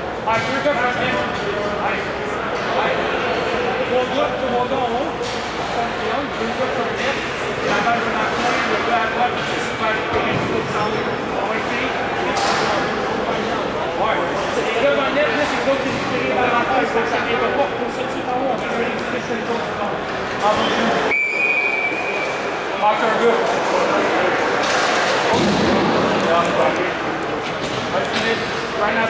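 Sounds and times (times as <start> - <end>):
crowd voices echoing indoors: 0.0 - 29.0.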